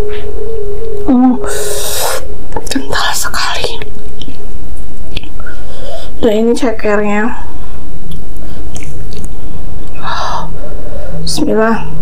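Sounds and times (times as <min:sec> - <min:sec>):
hum-like tone gliding downward: 0:00.0 - 0:04.8.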